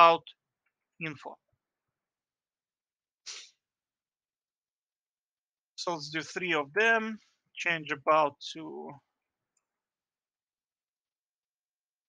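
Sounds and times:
person sniffing or exhaling: 0:03.3 - 0:03.5.

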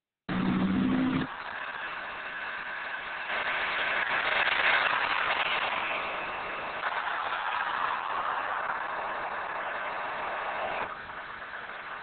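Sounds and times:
steady rushing noise: 0:00.3 - 0:12.0.

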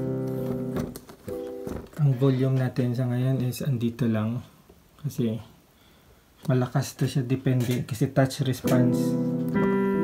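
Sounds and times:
piano chords: 0:00.0 - 0:02.0, 0:08.6 - 0:10.0.

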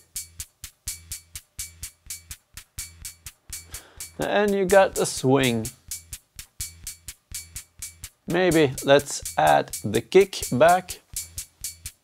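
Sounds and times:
synth hi-hat pattern: 0:00.0 - 0:12.0
low steady synth tone: 0:05.6 - 0:08.4.

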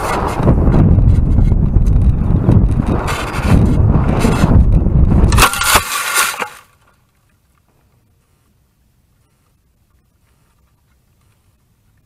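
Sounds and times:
wind buffeting microphone: 0:00.0 - 0:05.7
crashing into grass and brush: 0:05.2 - 0:07.0.

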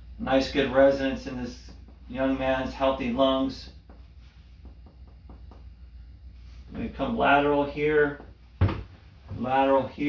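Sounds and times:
soft taps on chest: 0:03.8 - 0:05.9.

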